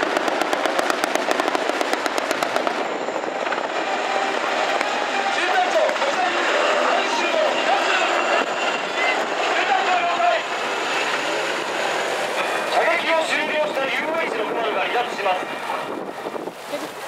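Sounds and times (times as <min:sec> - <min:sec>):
helicopter flying overhead: 0:00.0 - 0:17.0
people's voices: 0:04.7 - 0:17.0.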